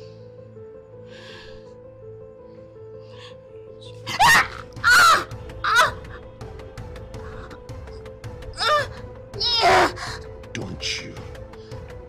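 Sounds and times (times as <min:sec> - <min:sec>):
background music with held tone: 0:00.0 - 0:12.0
woman screaming: 0:04.0 - 0:06.2, 0:08.6 - 0:10.1.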